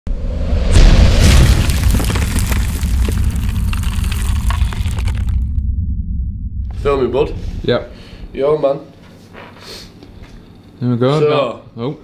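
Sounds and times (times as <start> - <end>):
low rumble: 0.1 - 8.6
deep boom: 0.4 - 8.4
crackling: 1.1 - 5.7.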